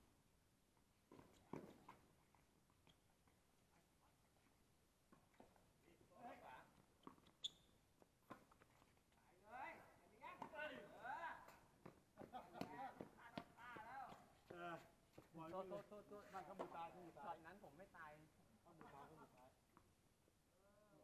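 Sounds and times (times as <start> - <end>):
players calling and talking: 9.2 - 19.8.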